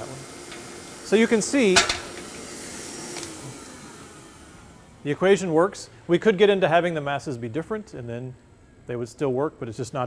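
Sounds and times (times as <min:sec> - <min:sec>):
air blower hissing: 0:00.0 - 0:07.0.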